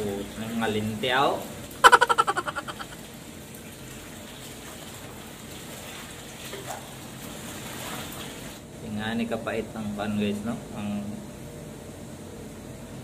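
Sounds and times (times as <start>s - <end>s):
running water and wet fabric: 0.0s - 8.7s.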